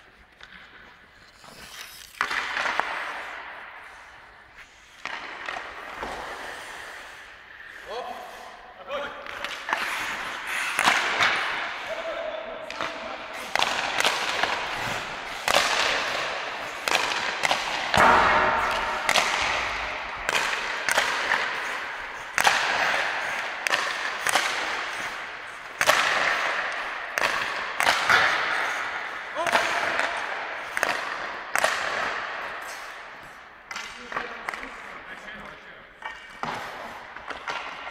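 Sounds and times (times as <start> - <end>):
pucks hitting boards: 0.3 - 8.2, 8.9 - 37.9
hockey stick striking puck: 0.4 - 7.2, 9.0 - 37.9.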